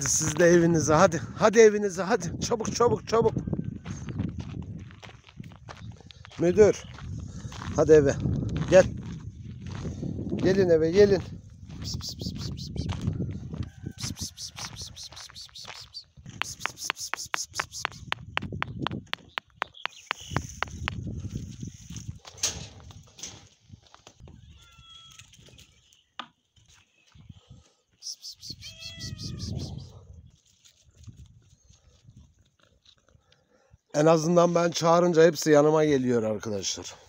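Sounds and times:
footsteps on gravel: 0:03.8 - 0:21.4.

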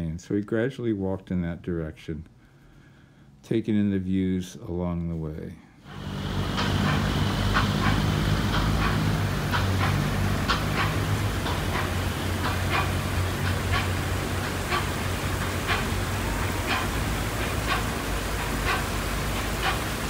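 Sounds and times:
low hum: 0:05.8 - 0:20.0
running water hiss: 0:05.8 - 0:20.0.

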